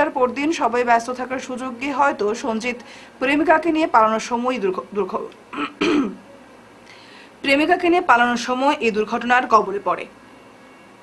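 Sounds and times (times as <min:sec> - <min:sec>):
woman speaking: 0:00.0 - 0:06.0, 0:07.4 - 0:10.2
woman clearing her throat: 0:05.5 - 0:06.2.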